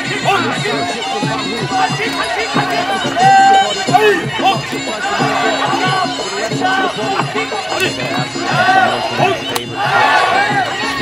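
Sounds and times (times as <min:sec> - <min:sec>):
reedy oboe wailing: 0:00.0 - 0:11.0
repeating drum beat: 0:00.0 - 0:11.0.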